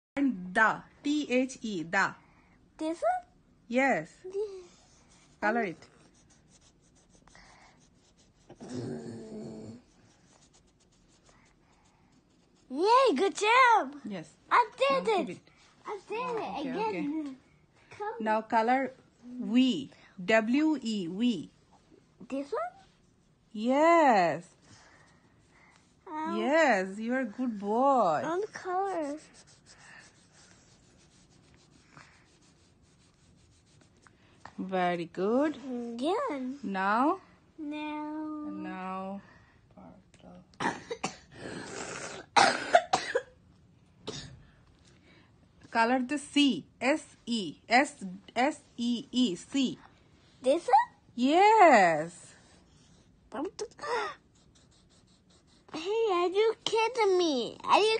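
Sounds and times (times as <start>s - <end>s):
marker scribbling on paper: 4.7s - 8.6s, 9.8s - 13.7s, 14.7s - 17.0s, 25.4s - 34.1s, 54.3s - 57.2s
pitched vocal hum: 8.6s - 9.8s.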